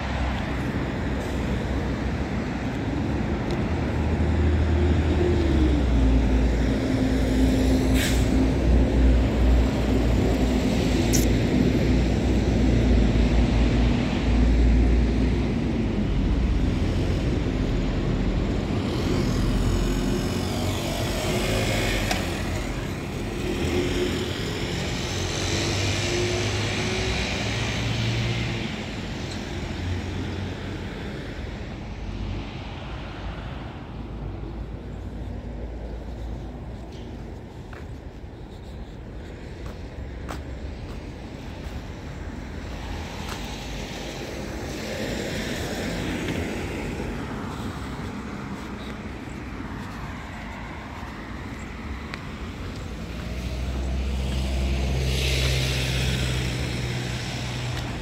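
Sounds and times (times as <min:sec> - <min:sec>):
steady engine hum: 0:00.0 - 0:58.0
vehicle engines running: 0:00.0 - 0:58.0.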